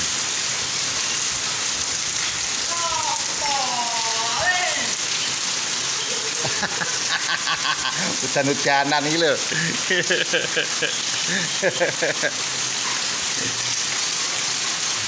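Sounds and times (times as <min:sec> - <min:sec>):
heavy rain on wet pavement: 0:00.0 - 0:15.0.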